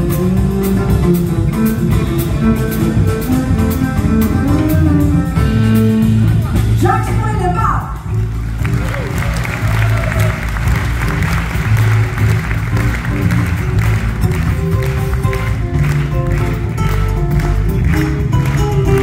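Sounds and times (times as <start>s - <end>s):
drum kit: 0.0s - 19.0s
audience applause: 8.1s - 19.0s.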